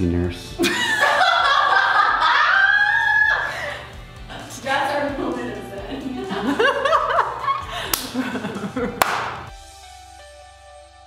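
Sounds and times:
background music: 0.0 - 11.0
woman laughing: 0.6 - 3.9, 6.0 - 9.0
sharp smacks: 9.0 - 9.5.

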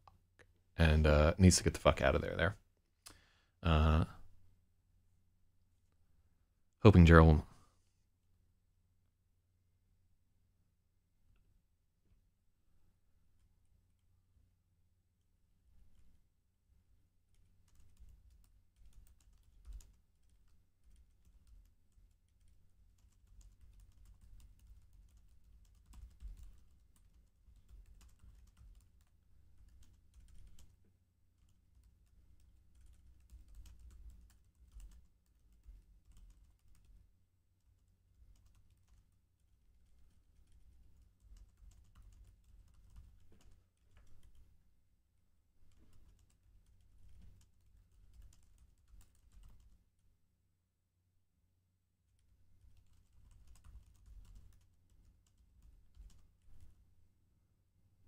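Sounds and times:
typing on a computer keyboard: 17.3 - 44.6, 45.6 - 49.8, 52.2 - 56.8.

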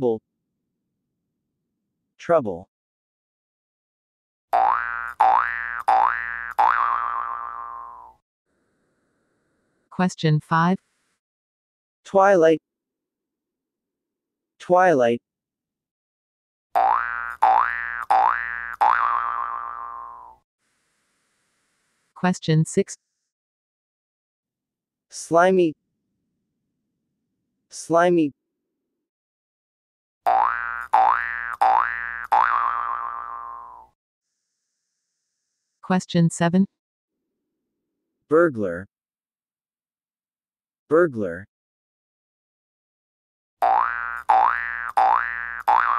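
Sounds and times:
cartoon boing sound effect: 4.6 - 8.2, 16.8 - 20.4, 30.3 - 33.9, 43.6 - 45.9.

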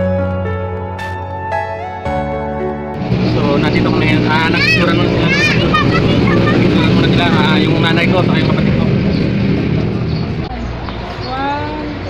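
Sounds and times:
low motor rumble: 3.0 - 12.0
people talking: 3.2 - 9.0, 10.5 - 12.0.

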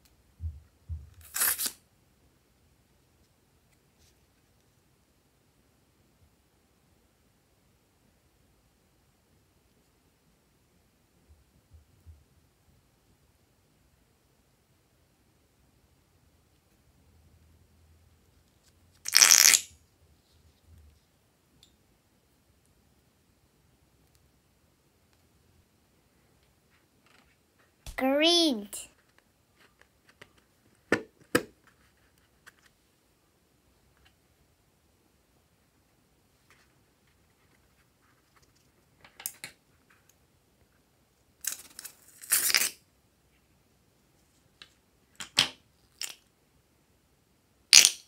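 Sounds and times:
faint small sounds: 0.0 - 48.0
balloon contents spurting out: 19.1 - 19.6.

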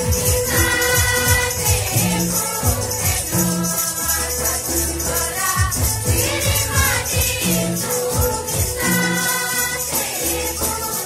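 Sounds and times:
drum beats: 0.0 - 11.0
women singing a hymn: 0.0 - 11.0.

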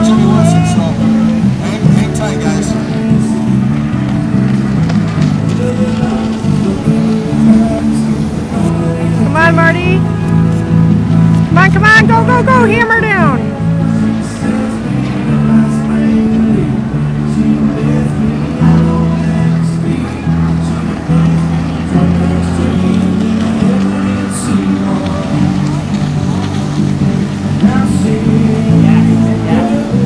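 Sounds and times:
jet ski engines: 0.0 - 30.0
music with bass line: 0.0 - 30.0.

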